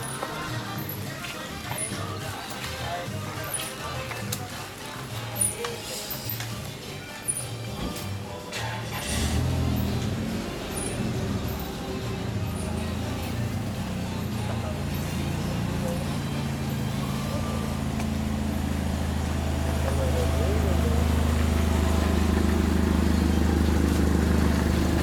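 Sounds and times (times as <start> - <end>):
vehicle engine idling: 0.0 - 25.0.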